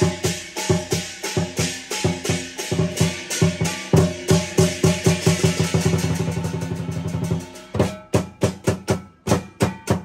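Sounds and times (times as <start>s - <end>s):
cymbals ringing: 0.0s - 10.0s
lion dance drum roll: 0.0s - 10.0s.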